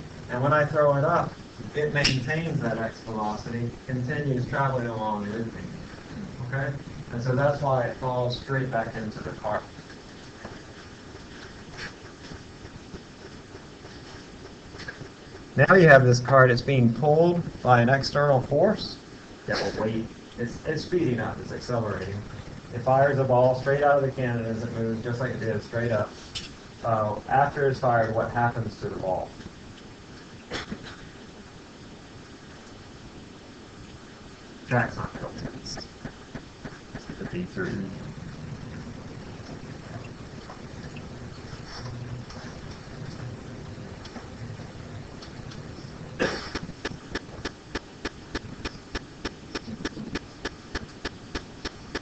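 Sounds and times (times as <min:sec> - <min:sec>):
lecture room background noise: 0:00.0 - 0:52.0
steady low hiss: 0:00.0 - 0:52.0.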